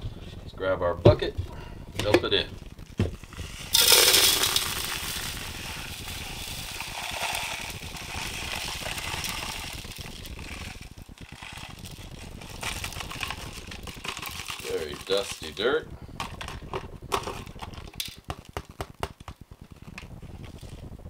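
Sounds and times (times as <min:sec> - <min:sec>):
foil bag crinkling: 0:02.6 - 0:20.8
gravel pouring onto wire mesh: 0:03.6 - 0:15.6.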